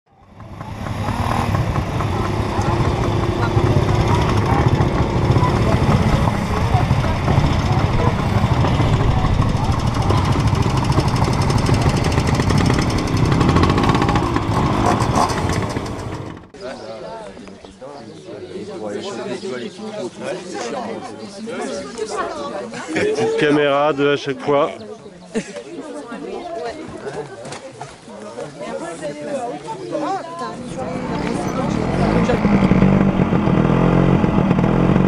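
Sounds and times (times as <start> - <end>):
people talking: 0.1 - 15.6, 16.6 - 33.1
moped engines running: 0.1 - 16.8, 30.5 - 35.0.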